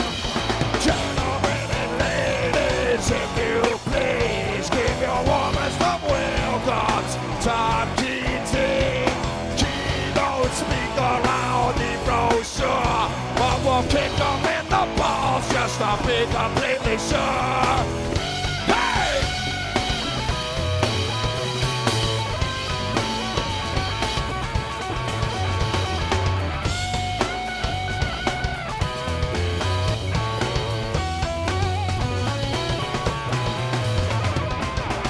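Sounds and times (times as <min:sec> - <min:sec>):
bass guitar: 0:00.0 - 0:35.0
drum kit: 0:00.0 - 0:35.0
electric guitar: 0:00.0 - 0:35.0.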